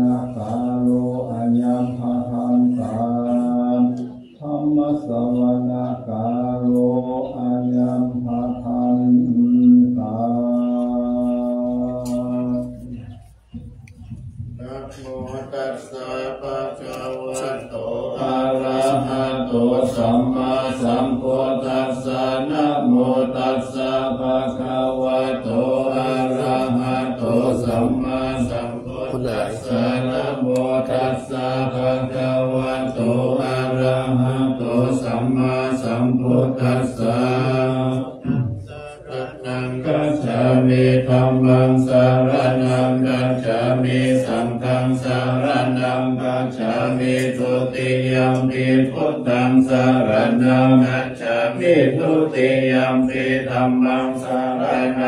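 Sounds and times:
monks chanting in low monotone: 0.0s - 55.0s.

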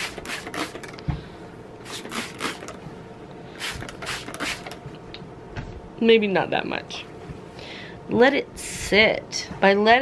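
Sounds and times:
spray bottle hissing sprays: 0.0s - 0.9s, 1.8s - 2.8s, 3.6s - 4.8s.

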